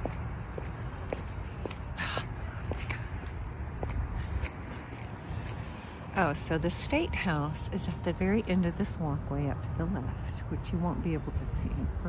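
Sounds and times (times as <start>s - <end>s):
footsteps on wet pavement: 0.0s - 8.7s.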